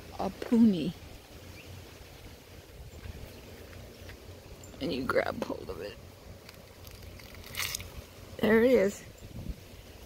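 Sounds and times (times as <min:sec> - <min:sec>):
leaves rustling: 0:00.0 - 0:10.0.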